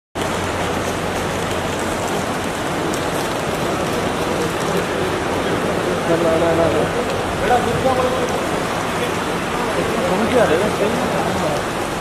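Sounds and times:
airport terminal background hiss: 1.9s - 12.0s.

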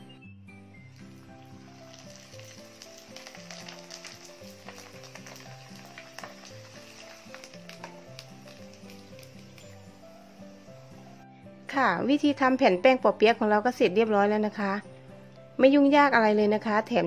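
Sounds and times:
background music: 0.0s - 17.0s
food frying in hot oil: 0.9s - 11.2s.

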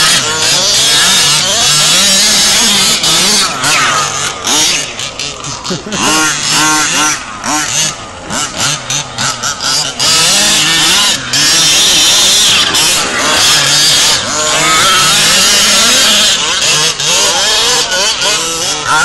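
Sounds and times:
small two-stroke engines revving: 0.0s - 19.0s.

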